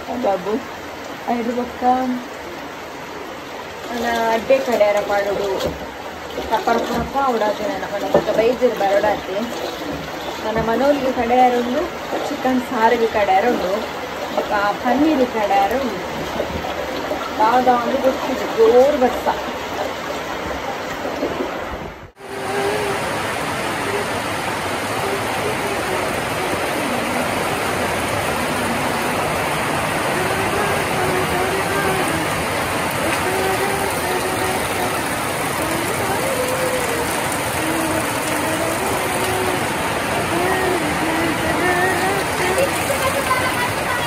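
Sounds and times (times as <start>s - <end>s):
heavy rain falling: 0.0s - 44.0s
water pouring off metal roof: 3.5s - 21.4s, 22.1s - 44.0s.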